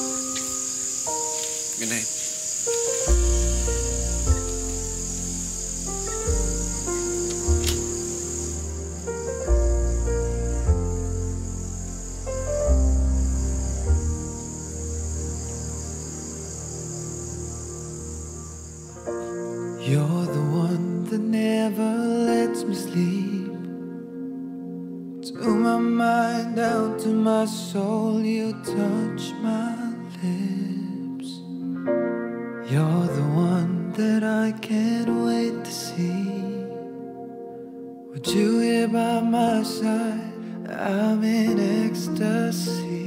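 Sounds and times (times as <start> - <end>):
crickets chirping: 0.0 - 30.6
soft background score music: 0.0 - 43.0.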